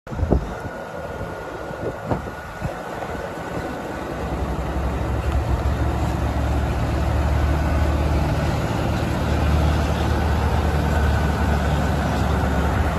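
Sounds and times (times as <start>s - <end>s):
diesel truck engine idling: 0.1s - 12.9s.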